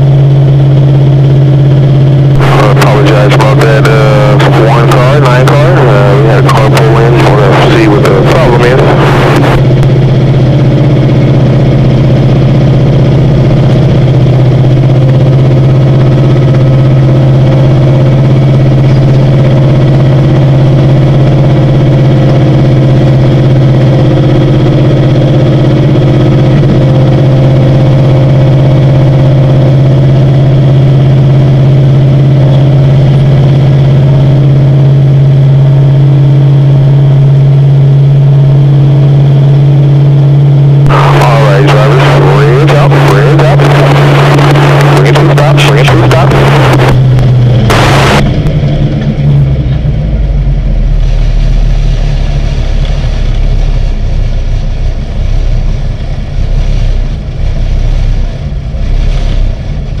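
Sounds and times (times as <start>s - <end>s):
race car engine from cockpit: 0.0s - 60.0s.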